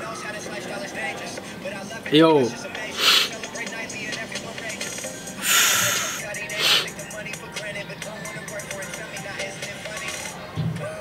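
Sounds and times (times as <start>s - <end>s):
background music: 0.0s - 11.0s
indistinct voices: 2.7s - 3.5s, 5.3s - 7.4s
burst of hiss: 2.9s - 3.4s, 5.4s - 6.9s.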